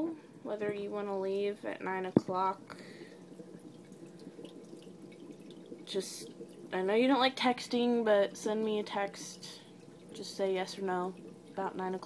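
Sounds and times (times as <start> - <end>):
fish tank filter water trickle: 0.0 - 12.0.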